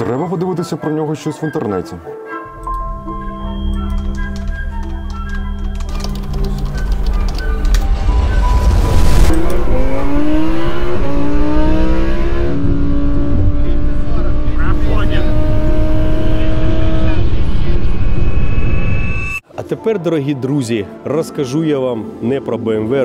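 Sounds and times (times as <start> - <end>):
car engine accelerating: 6.3 - 19.4.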